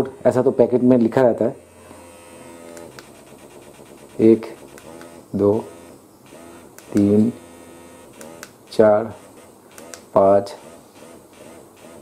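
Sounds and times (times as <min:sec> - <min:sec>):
vibration motor humming: 0:00.0 - 0:12.0
light clicks: 0:09.7 - 0:10.1.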